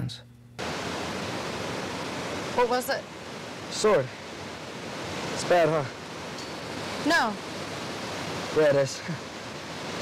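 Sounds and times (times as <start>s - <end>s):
waterfall rushing over rock: 0.6s - 10.0s.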